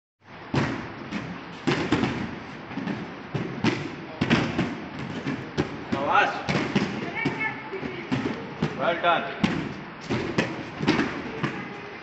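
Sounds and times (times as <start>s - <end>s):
bodies thudding on mats: 0.5s - 11.8s.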